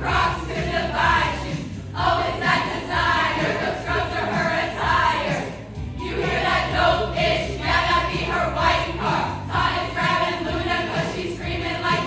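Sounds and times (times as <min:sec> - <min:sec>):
backing music: 0:00.0 - 0:12.0
women singing in chorus: 0:00.0 - 0:12.0.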